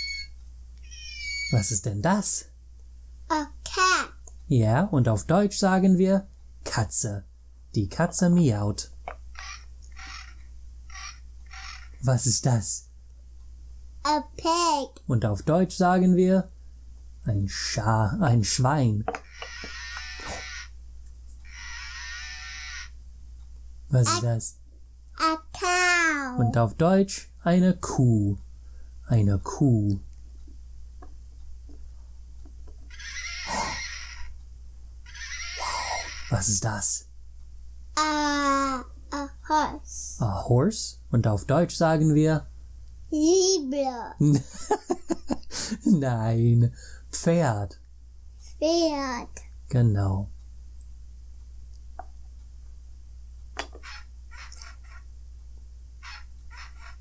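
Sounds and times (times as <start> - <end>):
recorded horse whinny from toy: 0.8 - 1.6, 9.4 - 12.0, 19.2 - 20.7, 21.4 - 23.0, 32.9 - 34.3, 35.1 - 36.4, 53.8 - 55.0, 56.0 - 57.0.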